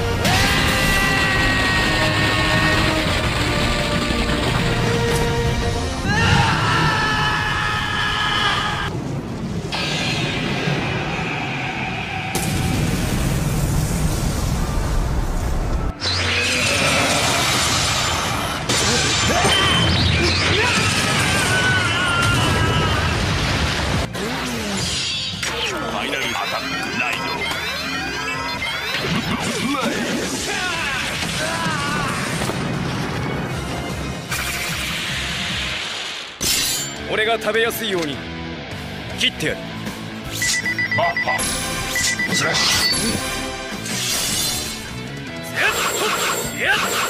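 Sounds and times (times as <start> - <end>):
rumbling explosions and fire: 0.0 - 36.4
dramatic background music: 0.0 - 47.0
loud noisy blast: 8.6 - 18.4.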